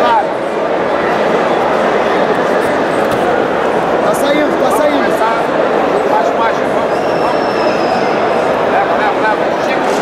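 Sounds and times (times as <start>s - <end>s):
crowd talking and shouting: 0.0s - 10.0s.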